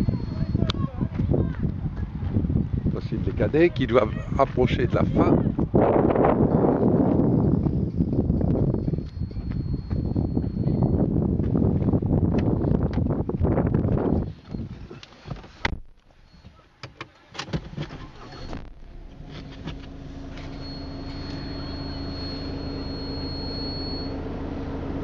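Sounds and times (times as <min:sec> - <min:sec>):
engine hum: 0:05.5 - 0:15.2, 0:17.7 - 0:25.0
loud low rumble: 0:18.6 - 0:25.0
faint high whine: 0:20.4 - 0:24.2.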